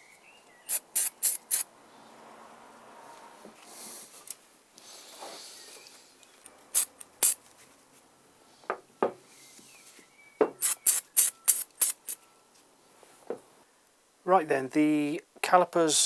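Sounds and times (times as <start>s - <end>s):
aerosol can spraying puffs: 0.7s - 1.7s, 6.7s - 7.4s, 10.6s - 12.2s.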